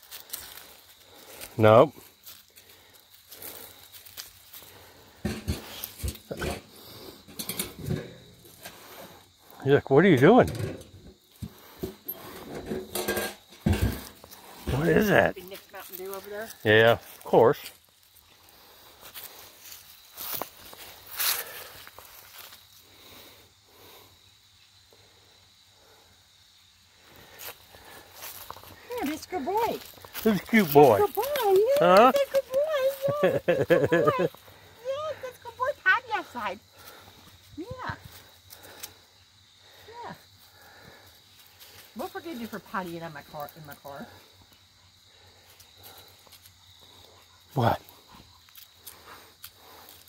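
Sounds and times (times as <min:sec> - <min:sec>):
footsteps in dry leaves: 0:15.4 - 0:22.7.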